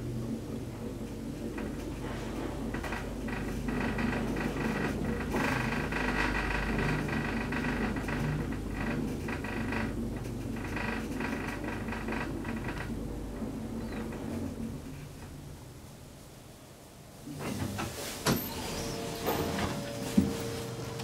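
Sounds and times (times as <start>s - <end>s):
elevator ride rumble: 0.0s - 21.0s.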